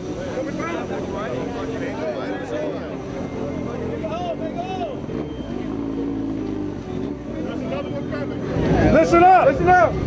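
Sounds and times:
motorcycle engines idling: 0.0 - 10.0
people talking: 0.0 - 10.0.

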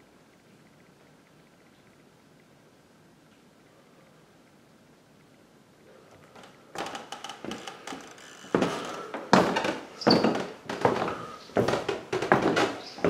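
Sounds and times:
footsteps on carpeted stairs: 6.8 - 13.0.

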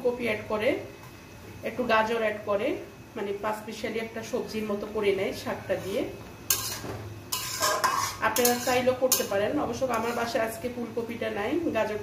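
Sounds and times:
metal spatula scraping a pan: 5.7 - 10.6.

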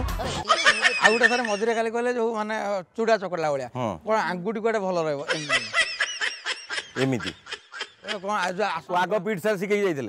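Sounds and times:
man speaking: 1.0 - 5.8, 6.9 - 7.4, 8.0 - 10.0.

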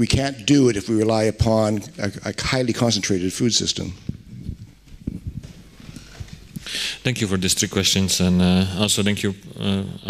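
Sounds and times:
microphone handling knocks and bumps: 4.0 - 6.6.

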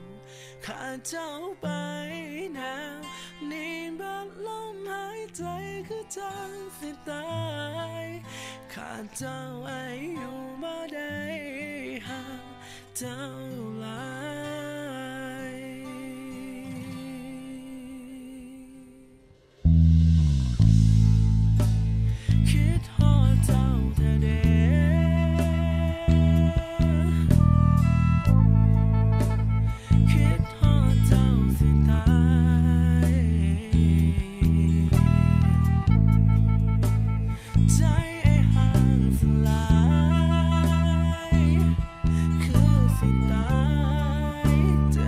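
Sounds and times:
person singing: 0.0 - 19.3, 22.1 - 45.0
drums: 19.3 - 24.7, 25.3 - 28.4, 29.1 - 32.2, 33.0 - 43.6
electric bass sustained notes: 19.6 - 45.0
pop band playing: 19.7 - 45.0.

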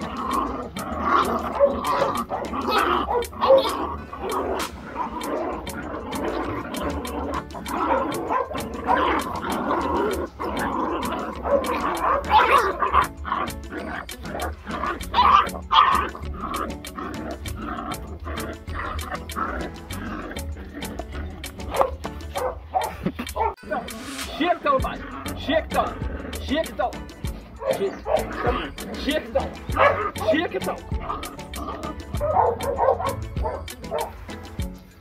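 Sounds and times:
puppies barking: 0.0 - 23.8, 24.7 - 35.0
music with a steady beat: 0.0 - 35.0.

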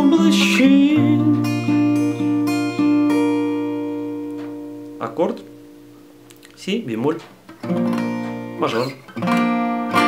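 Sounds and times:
person singing: 0.0 - 2.4
acoustic guitar chord: 0.0 - 6.3
guitar strings picked: 0.0 - 10.0.

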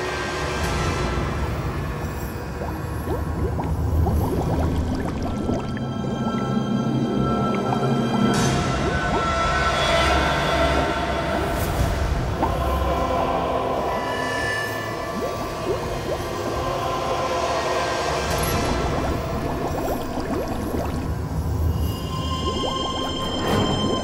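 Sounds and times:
tense background music: 0.0 - 24.0
bubbling from breathing gear: 1.9 - 12.8, 15.1 - 16.8, 18.3 - 24.0
low underwater rumble: 2.4 - 12.7.

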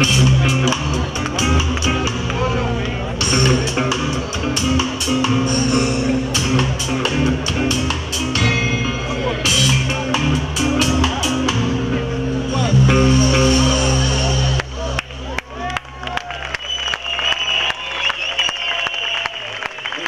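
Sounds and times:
crowd clapping and cheering: 0.0 - 12.0, 13.3 - 20.0
live rock band playing: 0.0 - 16.5.

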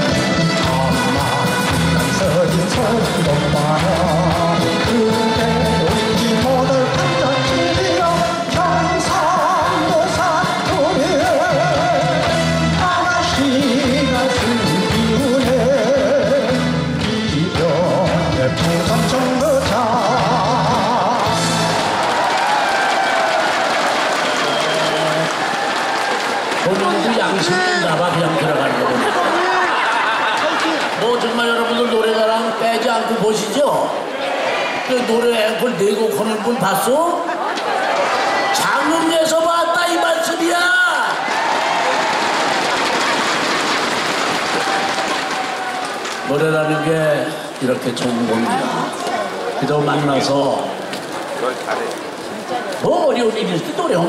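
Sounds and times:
man singing with vibrato: 0.0 - 21.8
live band playing: 0.0 - 22.5
audience applauding: 0.0 - 32.2, 36.8 - 54.0
laughter: 28.7 - 31.0.

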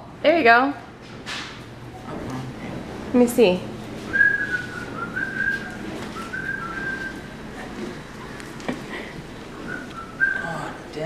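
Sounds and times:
person whistling: 4.1 - 7.3, 9.7 - 10.7.

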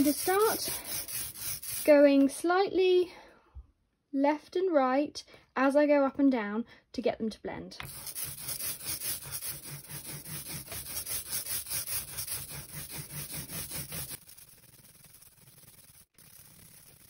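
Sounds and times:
rubber roller rubbing through ink: 0.0 - 2.2, 7.8 - 17.0.

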